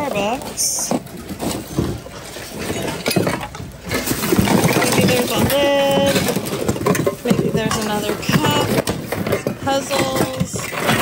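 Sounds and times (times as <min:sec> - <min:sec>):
voices in a busy store: 0:00.0 - 0:01.1, 0:04.0 - 0:11.0
plastic items clattering: 0:00.0 - 0:11.0.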